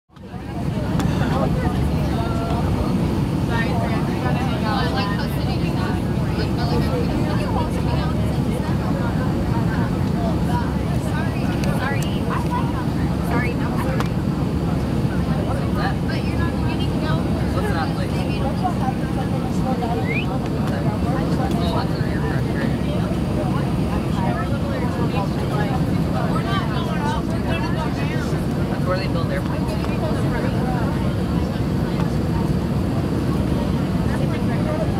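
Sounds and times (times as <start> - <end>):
airliner cabin rumble: 0.1 - 34.9
passengers chattering: 0.1 - 34.9.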